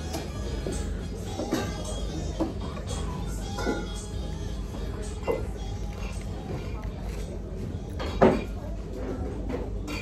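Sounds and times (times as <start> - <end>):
background music: 0.0 - 9.0
indistinct voices of diners: 0.0 - 10.0.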